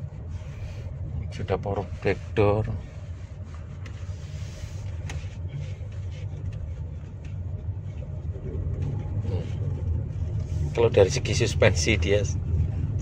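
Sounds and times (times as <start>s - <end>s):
road and drivetrain rumble: 0.0s - 13.0s.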